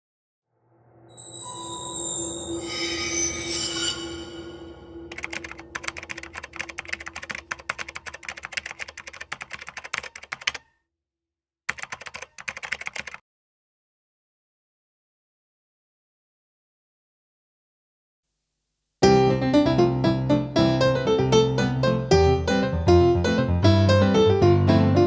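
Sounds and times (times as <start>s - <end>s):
rapid keyboard typing clicks: 5.1s - 10.7s, 11.7s - 13.2s.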